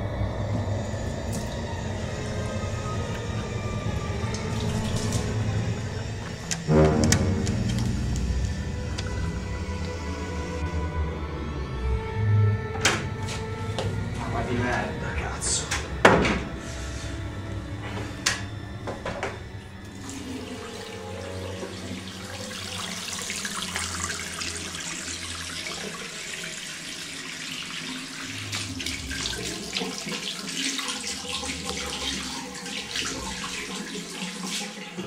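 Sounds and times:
tap water running into basin: 1.0 - 10.5, 18.3 - 35.0.

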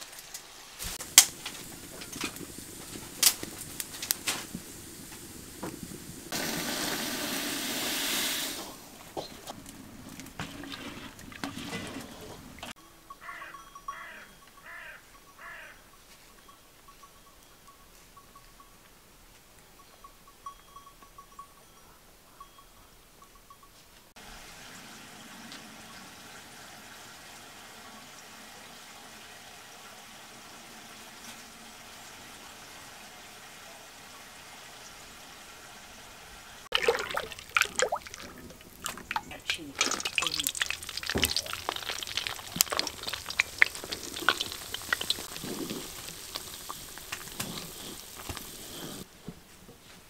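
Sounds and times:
faint steady hiss: 0.0 - 10.3, 22.1 - 50.0
oil pouring and splashing into pan: 36.7 - 48.8.

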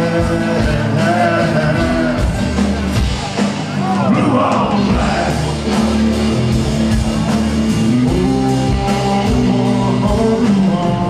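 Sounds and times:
person singing: 0.0 - 2.6, 3.8 - 11.0
bass and drums: 0.0 - 11.0
electric guitar: 0.0 - 11.0.

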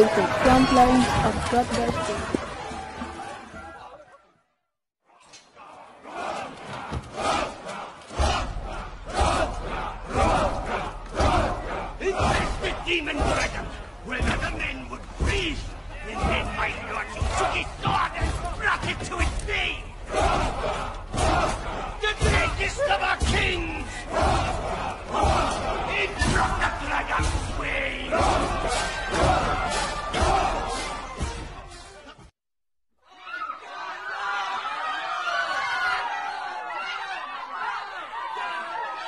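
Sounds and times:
group of voices yelling: 5.2 - 31.8, 33.1 - 39.0
rough shouts: 5.5 - 31.2.

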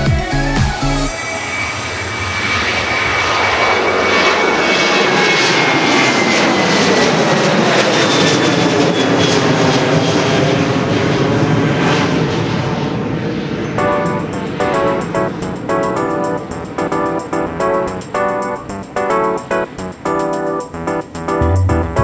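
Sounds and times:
jet engines at takeoff: 1.1 - 20.5.

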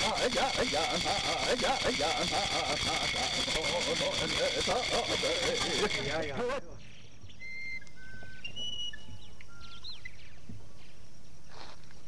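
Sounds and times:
birds whistling: 5.2 - 11.0.

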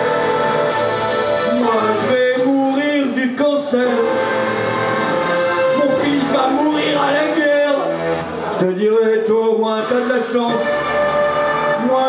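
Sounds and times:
man's voice: 1.4 - 4.4, 5.6 - 12.0.

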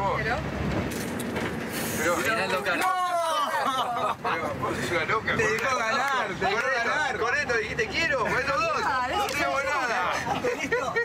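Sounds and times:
vehicle cabin rumble and rattle: 0.0 - 3.0.

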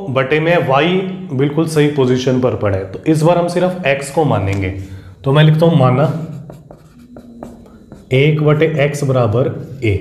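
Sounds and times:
man speaking: 0.0 - 6.4, 8.1 - 10.0
marker writing on whiteboard: 5.7 - 8.6.

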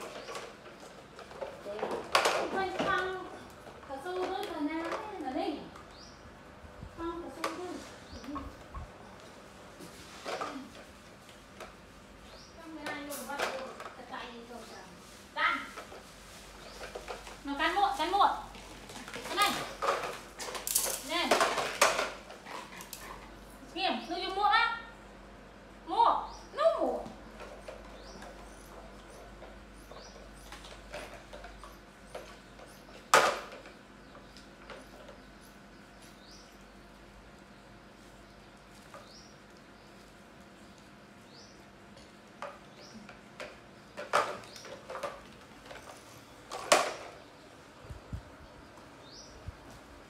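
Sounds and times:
plastic rustling: 9.7 - 23.3.

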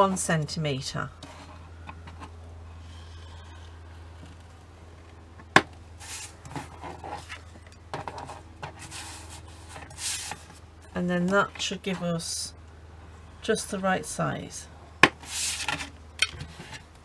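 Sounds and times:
low steady hum: 0.0 - 17.0
card stock sliding and rustling: 6.0 - 10.6, 15.2 - 16.8.

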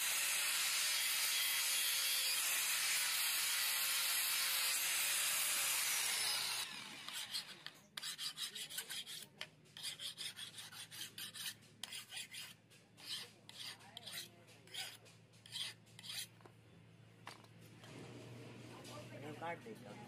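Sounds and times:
angle grinder grinding steel: 0.0 - 16.4
hand file rasping on blade: 0.2 - 16.4.

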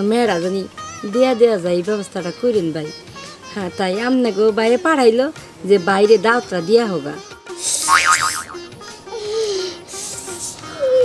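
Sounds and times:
wobbling boing tone: 7.8 - 8.7.

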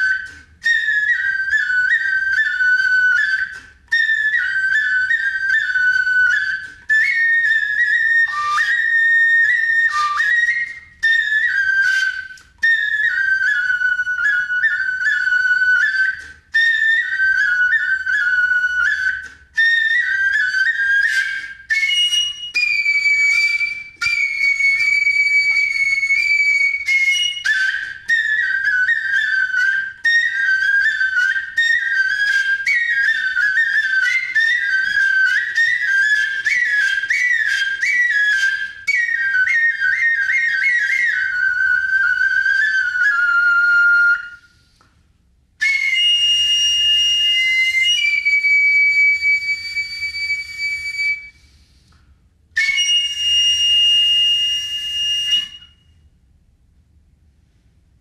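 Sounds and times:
transverse flute playing solo: 0.0 - 44.8, 45.6 - 51.9, 52.6 - 55.9.

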